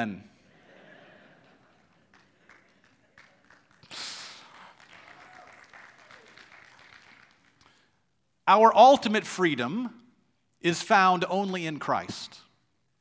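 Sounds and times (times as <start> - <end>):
scattered claps: 1.4 - 7.8.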